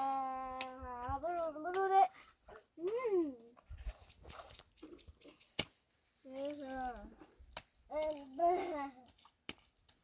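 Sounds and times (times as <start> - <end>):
child's wavering vocal sounds: 8.0 - 9.1.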